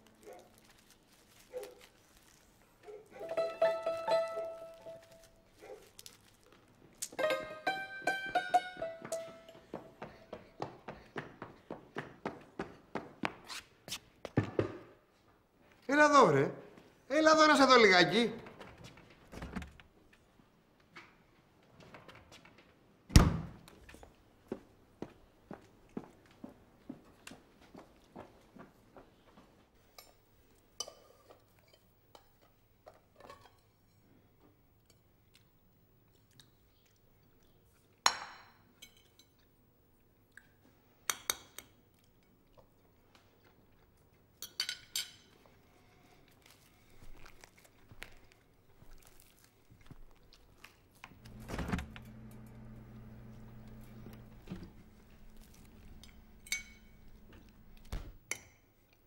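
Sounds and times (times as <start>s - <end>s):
soft chewing: 0.0s - 3.2s, 4.8s - 7.2s, 34.4s - 38.0s, 38.9s - 40.9s, 41.7s - 44.4s, 45.3s - 51.2s, 53.3s - 57.9s
low hum: 51.2s - 58.1s
knife clinking on plate: 56.0s - 57.1s.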